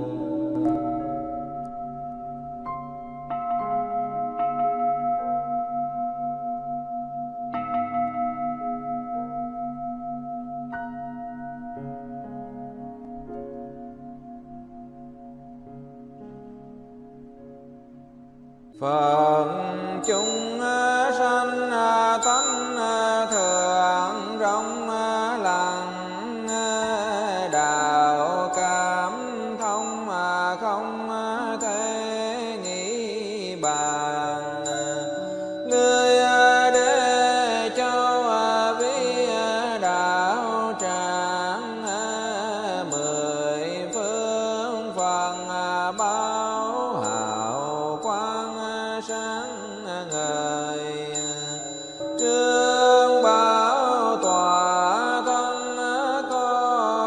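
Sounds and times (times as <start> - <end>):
person chanting: 0.0 - 2.3, 18.8 - 57.0
steady held tone: 0.0 - 17.0, 17.9 - 57.0.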